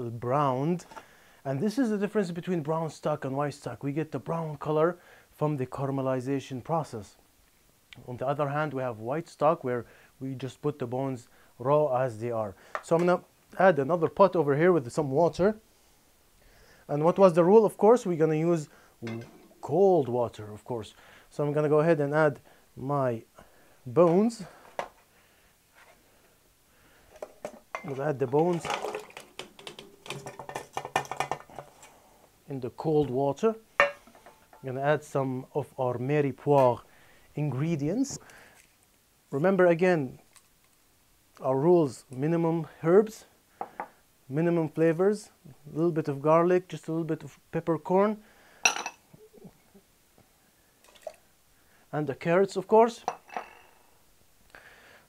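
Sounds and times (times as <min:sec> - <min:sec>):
ceramic bowls clinking: 0:19.0 - 0:19.7, 0:27.2 - 0:31.6, 0:33.8 - 0:34.7, 0:48.6 - 0:49.0, 0:53.0 - 0:53.7
bones knocking in metal pot: 0:27.2 - 0:31.7, 0:33.8 - 0:34.6.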